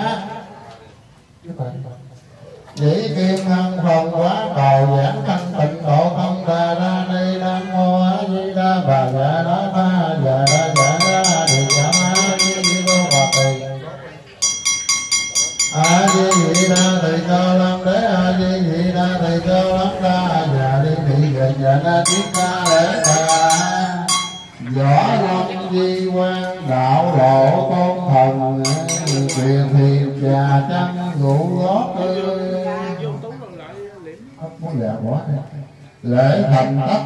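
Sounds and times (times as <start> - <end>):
man chanting: 2.8 - 13.9, 15.8 - 33.0
light metallic clinks: 10.5 - 13.8, 14.4 - 17.1, 22.1 - 24.6, 28.7 - 29.6
small metal bell rung rapidly: 10.5 - 13.8, 14.4 - 17.2, 22.1 - 24.6, 28.7 - 29.6.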